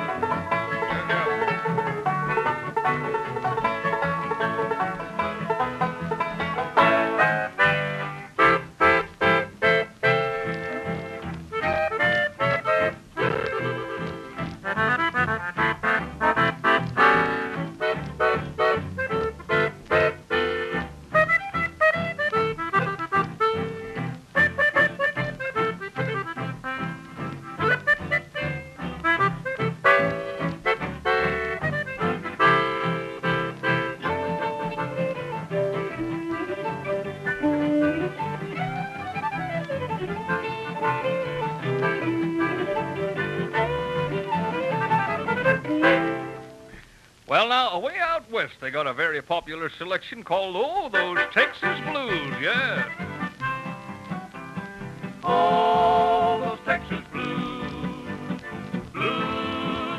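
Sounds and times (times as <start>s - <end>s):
old-time string band instrumental: 0.0s - 59.9s.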